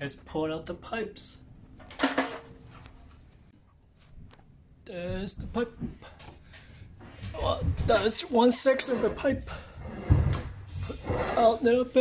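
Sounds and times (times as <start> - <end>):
metal pipe clattering: 1.8 - 2.6.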